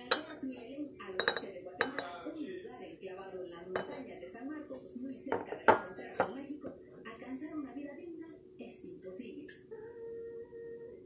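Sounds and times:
china cup and saucer clinking: 0:00.0 - 0:00.6, 0:01.2 - 0:02.2, 0:03.8 - 0:04.0.

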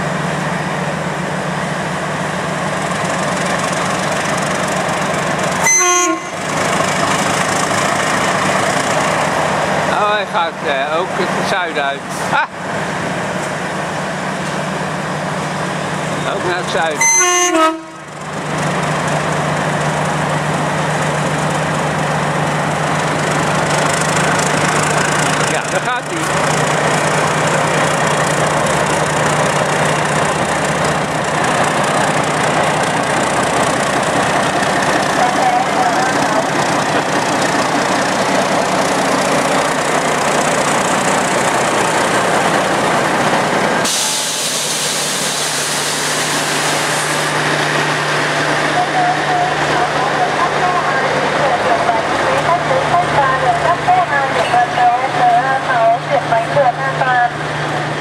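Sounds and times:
locomotive engine humming: 0:00.0 - 0:58.0
train coaches rumbling and rattling: 0:00.0 - 0:58.0.

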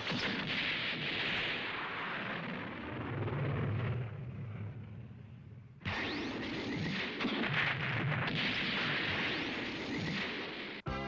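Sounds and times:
rushing explosion noise: 0:00.0 - 0:05.1.

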